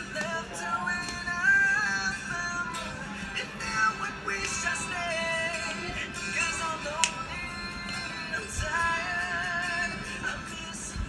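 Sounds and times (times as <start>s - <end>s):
acoustic guitar: 0.0s - 11.0s
man singing with vibrato: 0.0s - 11.0s.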